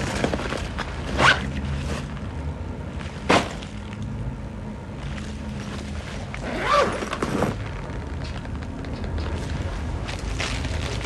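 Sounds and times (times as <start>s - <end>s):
zip pulled on a bag: 6.4s - 7.6s.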